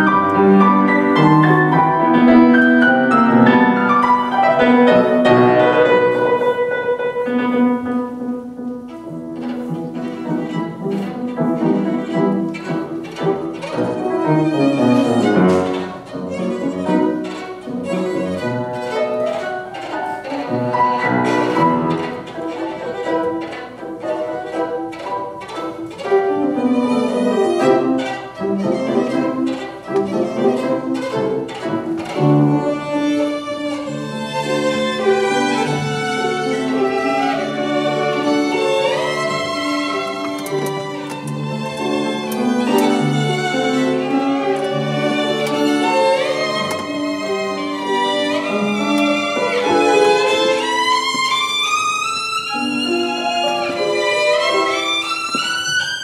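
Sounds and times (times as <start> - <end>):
piano accompaniment: 0.0 - 56.0
violin: 0.0 - 56.0.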